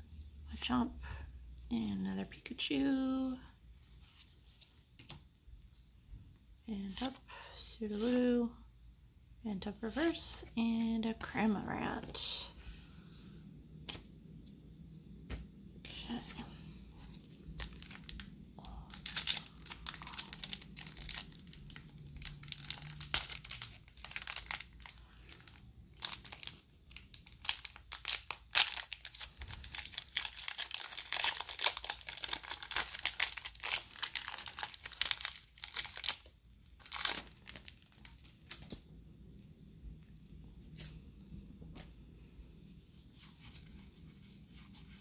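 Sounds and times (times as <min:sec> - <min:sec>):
foil wrapper crinkling and tearing: 0:17.4 - 0:38.8.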